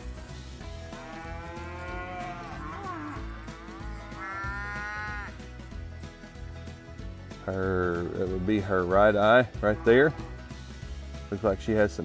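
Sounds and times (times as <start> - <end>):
calves mooing: 0.8 - 5.4, 8.2 - 10.4.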